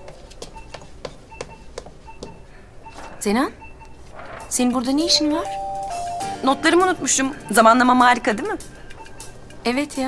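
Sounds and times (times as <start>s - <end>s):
footsteps on hard floor: 0.0s - 3.1s
faint electronic beeps: 0.0s - 9.5s.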